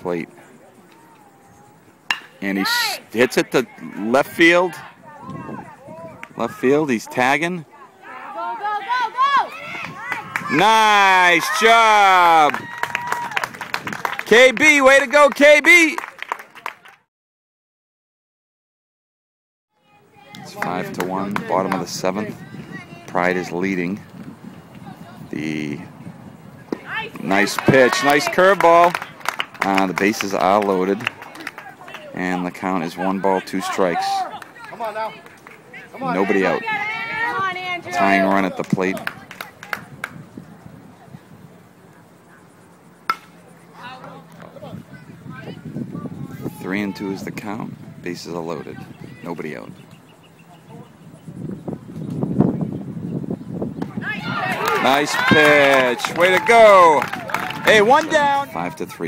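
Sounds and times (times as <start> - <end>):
spectators' voices: 0.0 - 16.8, 19.9 - 52.8, 53.8 - 59.0
sharp ringing crack of baseball: 2.1 - 2.4, 43.1 - 43.4.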